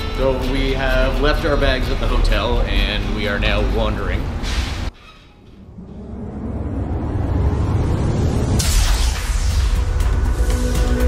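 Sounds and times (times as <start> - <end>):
deep low rumble riser: 1.5 - 10.7.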